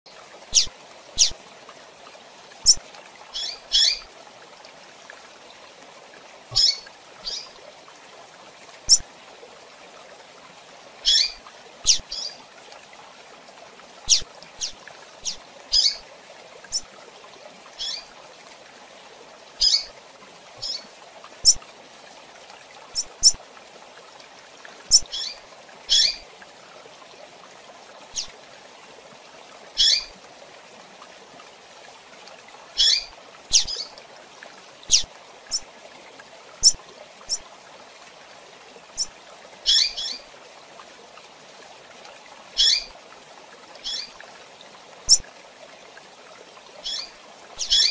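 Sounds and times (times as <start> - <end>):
bird chirping: 0.5 - 1.3, 6.5 - 7.5, 11.1 - 12.3, 14.1 - 16.0, 17.8 - 18.0, 19.6 - 19.9.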